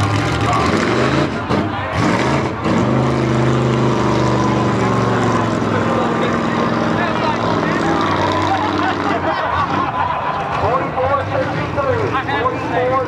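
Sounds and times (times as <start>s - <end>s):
truck engine running hard: 0.0s - 13.0s
voices: 4.4s - 13.0s.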